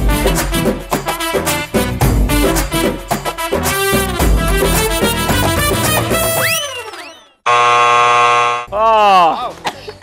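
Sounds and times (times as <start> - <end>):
game show buzzer: 7.4 - 8.7.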